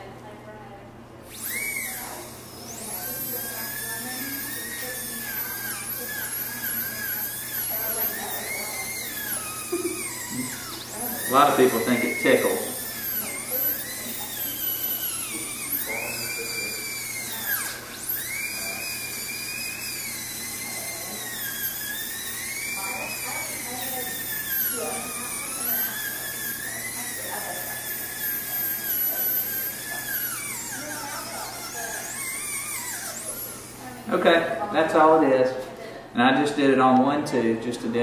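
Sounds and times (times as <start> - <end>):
dental drill whining: 1.2 - 35.4.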